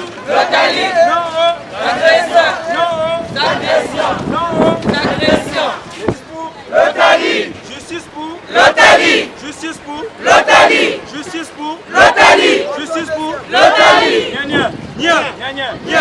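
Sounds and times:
crowd chanting a slogan: 0:00.0 - 0:16.0.

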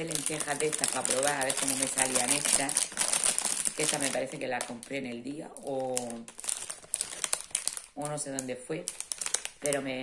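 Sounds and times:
plastic packet crinkling: 0:00.0 - 0:10.0.

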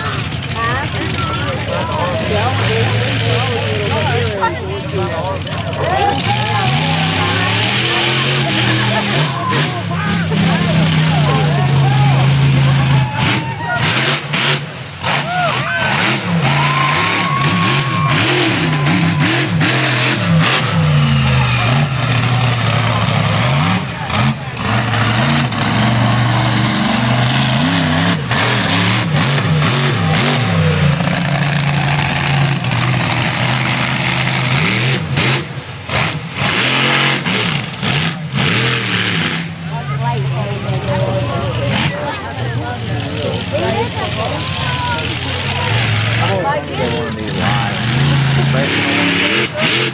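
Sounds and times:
crowd voices: 0:00.0 - 0:49.9
monster truck engine revving: 0:00.0 - 0:49.9.

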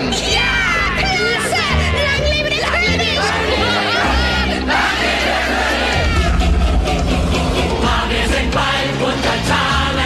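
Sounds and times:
low bass notes: 0:00.0 - 0:10.0
cartoon voices cheering and whooping: 0:00.2 - 0:06.6
orchestral music: 0:00.9 - 0:10.0.

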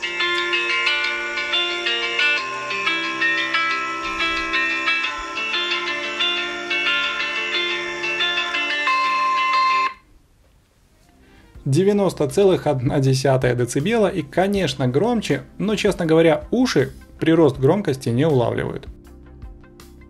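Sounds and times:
loud music from phone speakers: 0:00.0 - 0:09.8.

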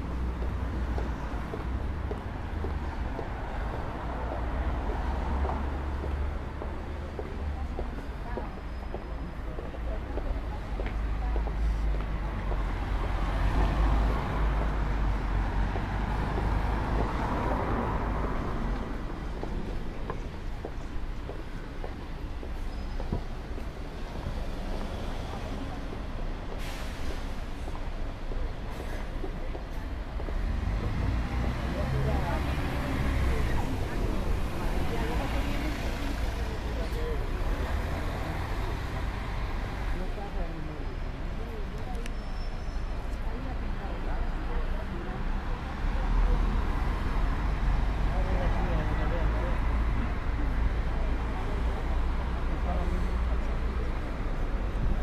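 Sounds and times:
passing cars and buses: 0:00.0 - 0:55.0
street traffic: 0:00.0 - 0:55.0.

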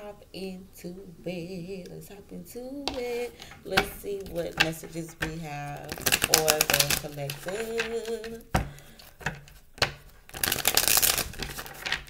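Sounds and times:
cards being riffle-shuffled: 0:04.3 - 0:12.0.

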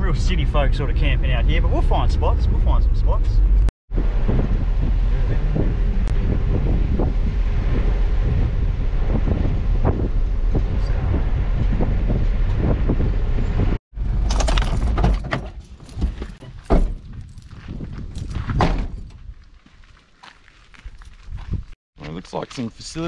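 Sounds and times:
vehicle door clicks and knocks: 0:14.2 - 0:17.0.

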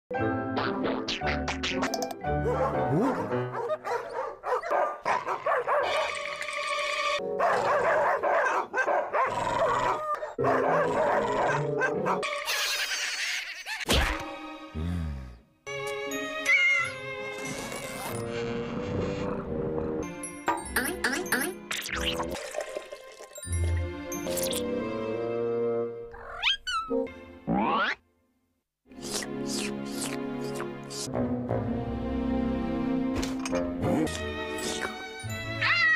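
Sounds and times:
upbeat cartoon music: 0:00.1 - 0:03.9, 0:13.9 - 0:26.1, 0:26.7 - 0:28.0, 0:28.9 - 0:35.9
cartoon music: 0:00.2 - 0:03.5, 0:15.7 - 0:19.2, 0:20.0 - 0:22.4, 0:26.4 - 0:28.0
yelping cartoon voices: 0:11.0 - 0:13.9
cartoon kitten meows and squeaks: 0:16.4 - 0:17.0, 0:26.1 - 0:27.1, 0:35.6 - 0:35.9.

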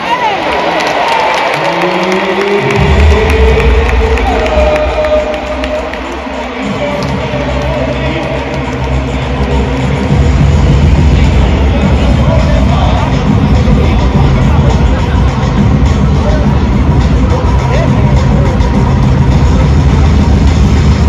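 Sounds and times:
crowd cheering: 0:00.0 - 0:14.2
music over sound system: 0:01.6 - 0:21.0.

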